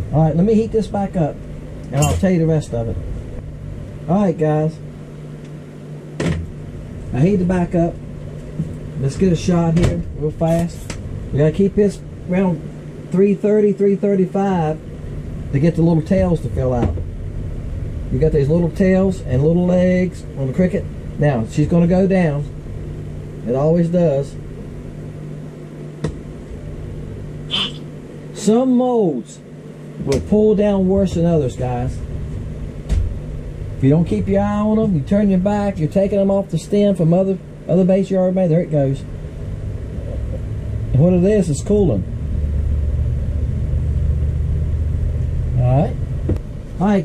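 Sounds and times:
microwave oven humming: 0.0s - 47.0s.

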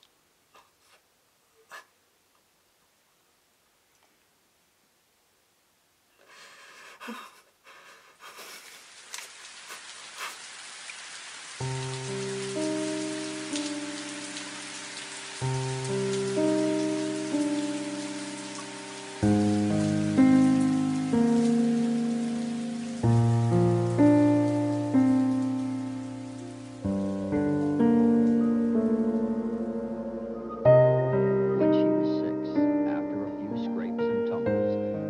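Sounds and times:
steady rain hiss: 0.0s - 35.0s
slow music with struck chords: 11.6s - 35.0s.

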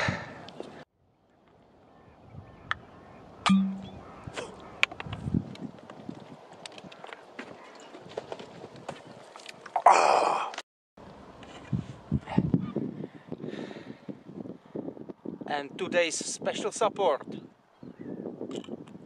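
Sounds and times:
loud breathy exhale: 0.0s - 0.4s, 13.0s - 14.1s
glass bottle knock: 3.5s - 4.0s.

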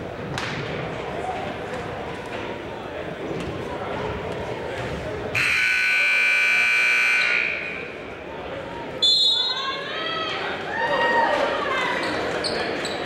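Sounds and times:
crowd chatter: 0.0s - 13.0s
referee's whistle: 5.4s - 7.9s, 9.0s - 9.8s
scoreboard buzzer: 5.4s - 7.9s.

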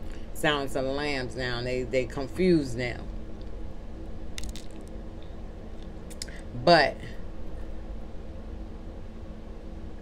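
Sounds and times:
faint hum: 0.0s - 10.0s.

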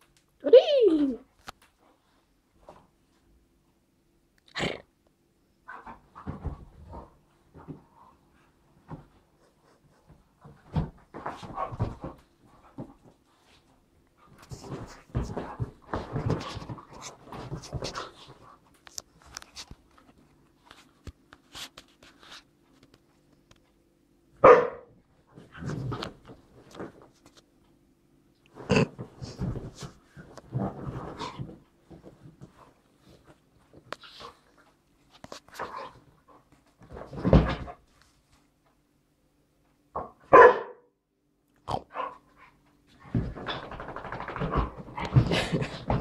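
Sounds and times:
dogs scuffling: 10.4s - 20.9s, 42.9s - 46.0s
dog barking: 24.4s - 24.9s, 40.3s - 40.9s.

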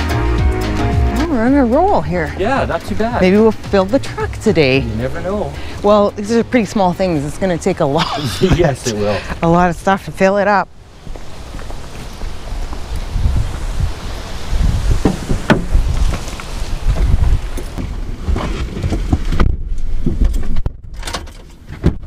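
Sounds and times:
wind buffeting microphone: 1.3s - 21.0s
microphone handling noise: 11.1s - 21.0s
knocks and rustling: 15.0s - 22.0s.

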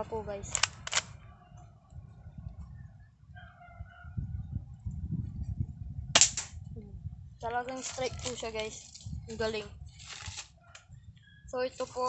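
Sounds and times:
toy pellet gun shot: 0.5s - 1.1s, 6.2s - 6.5s.

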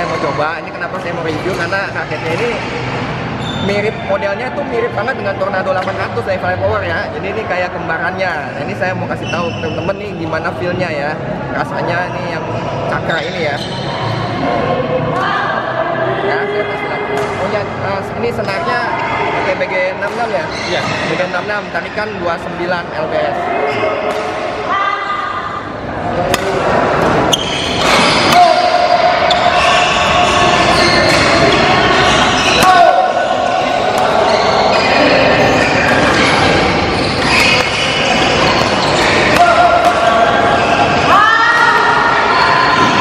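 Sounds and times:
background chatter: 0.0s - 43.0s
voices: 22.8s - 43.0s
racket hitting shuttlecock: 26.2s - 28.5s.

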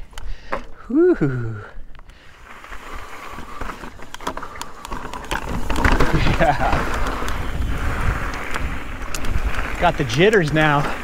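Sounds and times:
bike clicking and rattling: 1.7s - 11.0s
bike tyres crunching over stones: 1.9s - 11.0s.

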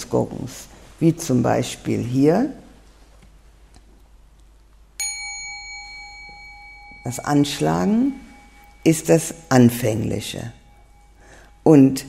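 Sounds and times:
gong struck and ringing: 5.0s - 12.0s.

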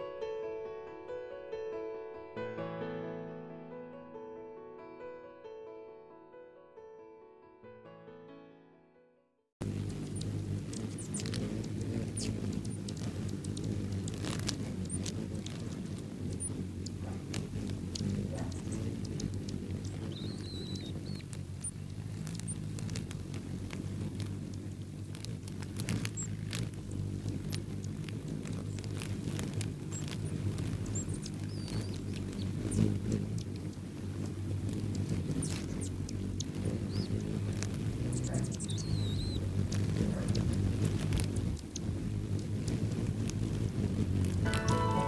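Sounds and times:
birds chipping and clicking: 9.6s - 45.0s
hummingbird wings humming: 9.6s - 45.0s.

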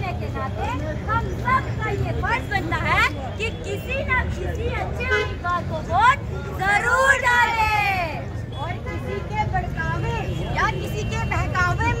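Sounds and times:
crowd babble: 0.0s - 12.0s
low street rumble: 0.0s - 12.0s.

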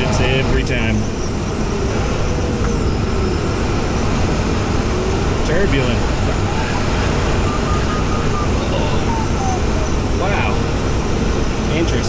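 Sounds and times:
variometer beeping pips: 0.0s - 11.8s
airflow rushing through cockpit: 0.0s - 12.0s.

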